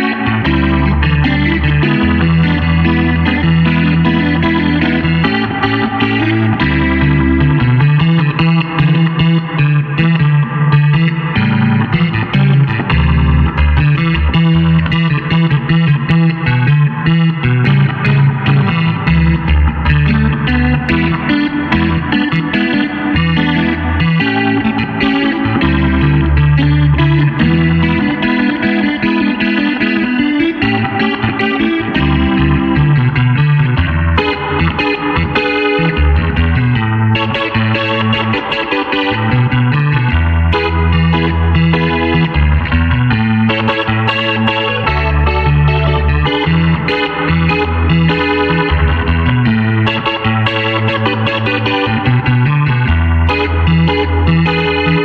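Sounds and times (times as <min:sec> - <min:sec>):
clavinet funk jam: 0:00.0 - 0:55.0.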